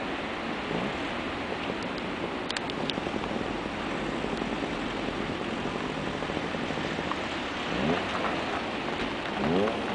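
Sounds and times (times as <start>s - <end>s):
ocean surf breaking: 0.0s - 9.9s
wind noise on microphone: 0.0s - 9.9s.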